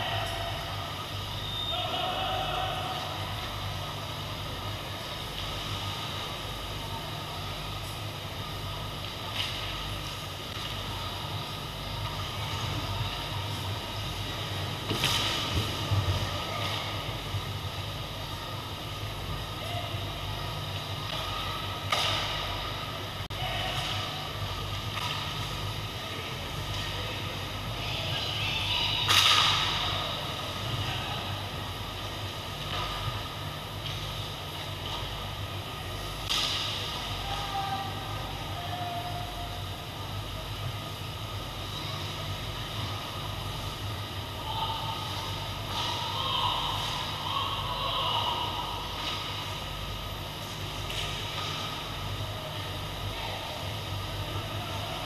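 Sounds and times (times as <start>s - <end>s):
hockey sticks and puck clacking: 21.1s - 22.4s, 50.8s - 51.8s.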